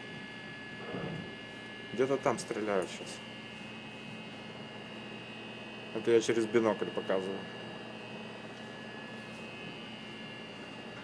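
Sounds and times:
faint constant whine: 0.0s - 11.0s.

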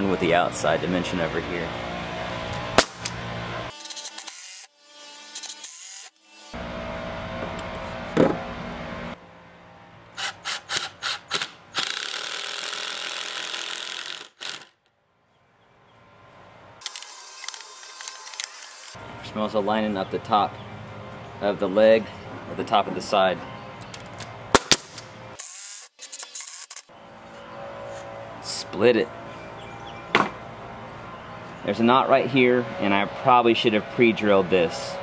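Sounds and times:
sharp crack: 2.5s - 3.2s, 24.5s - 25.1s
impact driver hammering: 30.1s - 30.4s.

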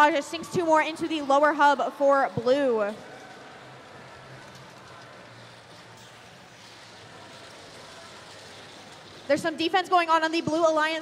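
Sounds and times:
indoor arena background noise: 0.0s - 11.0s.

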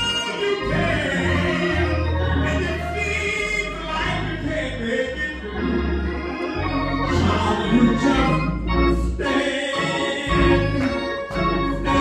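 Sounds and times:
steady bass: 0.0s - 9.4s, 10.1s - 12.0s
organ chords: 0.0s - 12.0s.

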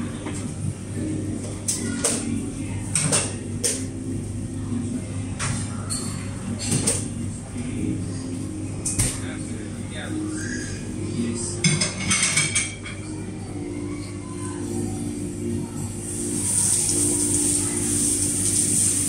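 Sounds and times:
background murmur: 0.0s - 19.0s
dishes and utensils clinking: 5.4s - 7.1s, 11.6s - 13.2s.

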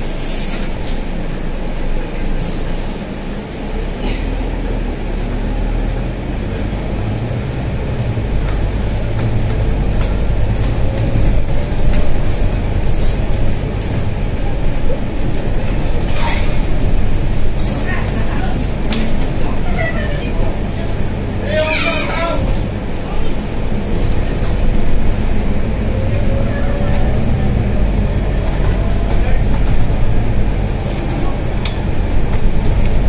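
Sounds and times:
bus engine rumble: 0.0s - 33.0s.

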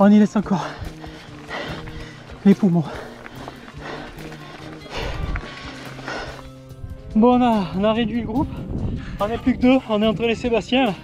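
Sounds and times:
background music with held notes: 0.0s - 11.0s
person breathing hard: 0.5s - 6.8s.

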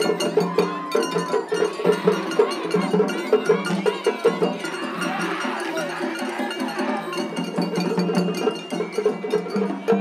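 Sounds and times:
drums beaten in fast rhythm: 0.0s - 10.0s.

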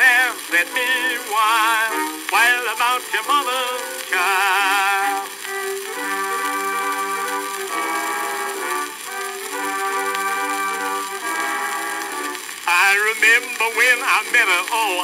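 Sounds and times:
instruments playing held melody notes: 0.0s - 15.0s
steady recording hiss: 0.0s - 15.0s.

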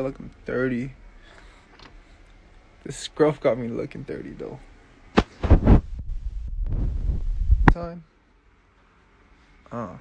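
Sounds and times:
low rumble: 5.4s - 7.8s.

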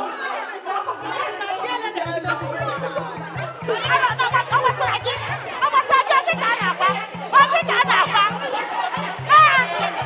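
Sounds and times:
women shouting and arguing: 0.0s - 10.0s
background music with bass beat: 2.0s - 10.0s.

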